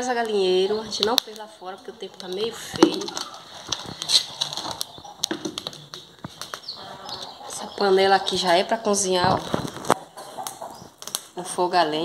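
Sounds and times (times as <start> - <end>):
wood fire crackling and popping: 0.0 - 12.0.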